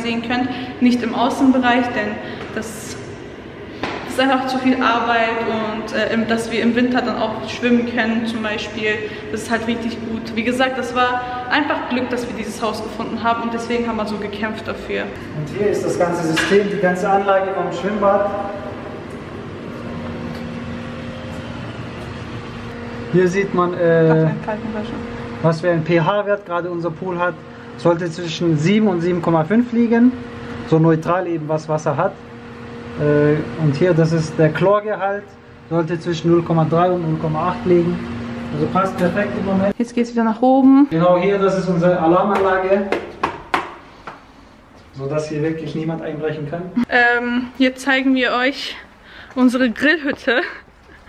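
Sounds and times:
machinery humming: 0:00.0 - 0:51.0.

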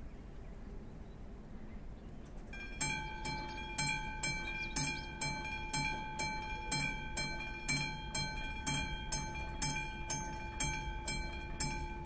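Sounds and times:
level-crossing warning bell ringing: 0:02.6 - 0:12.0.

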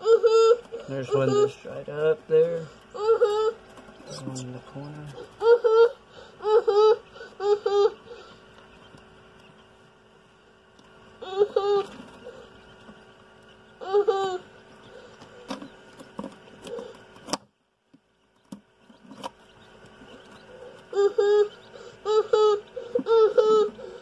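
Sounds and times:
incubator fan humming: 0:00.0 - 0:24.0.

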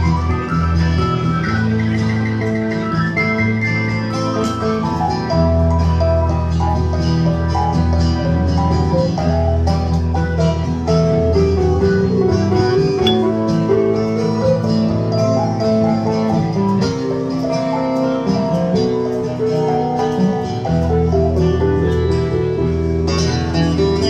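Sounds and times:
guitars and keyboard instrumental: 0:00.0 - 0:24.0.

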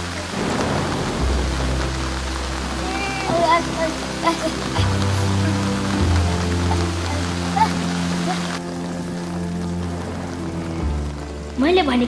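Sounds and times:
heavy rain: 0:00.0 - 0:12.0
thunder rumble: 0:00.0 - 0:12.0.

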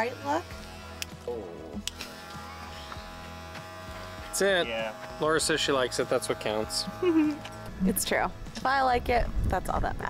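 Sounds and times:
electric hair clippers buzzing: 0:00.0 - 0:09.5.

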